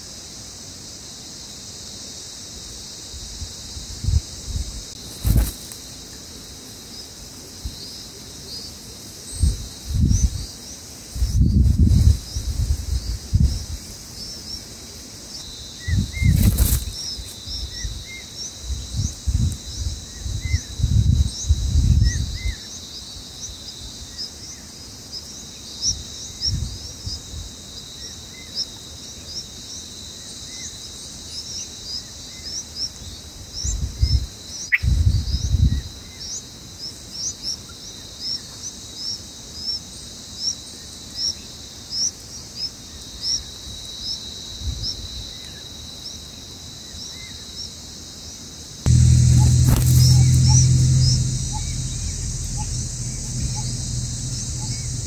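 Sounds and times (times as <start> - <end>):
high insect drone: 0.0 - 32.4, 47.7 - 55.0
high rising chirps: 48.9 - 55.0
low rumbling wind gusts: 48.9 - 55.0
sharp click: 48.9 - 55.0.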